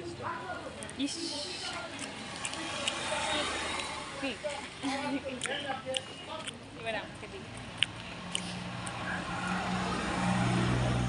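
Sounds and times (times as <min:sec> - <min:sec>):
road noise: 0:00.0 - 0:11.0
vehicle engine hum: 0:00.0 - 0:11.0.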